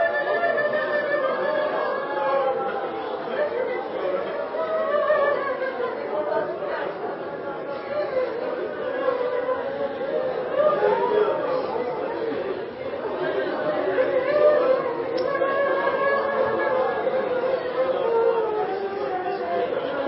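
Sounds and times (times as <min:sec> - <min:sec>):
many overlapping voices: 0:00.0 - 0:20.0.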